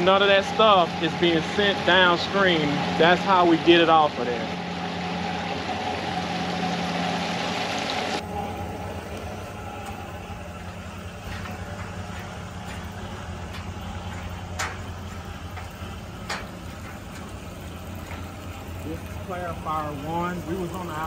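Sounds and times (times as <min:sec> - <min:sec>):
clarifier machinery humming: 0:00.0 - 0:21.0.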